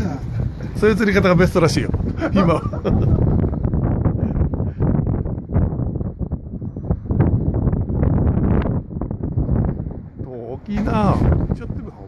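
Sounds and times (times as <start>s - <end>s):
gusty wind buffeting microphone: 0.0s - 12.0s.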